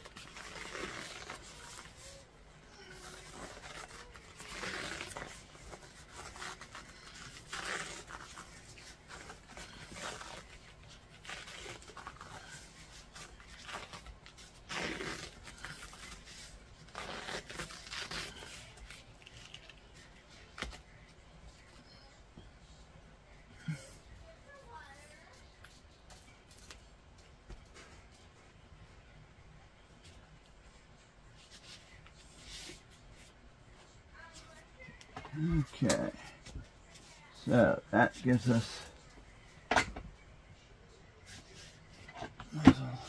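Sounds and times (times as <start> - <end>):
adhesive wrap rasping and tearing: 0.0 - 2.0, 2.9 - 19.8.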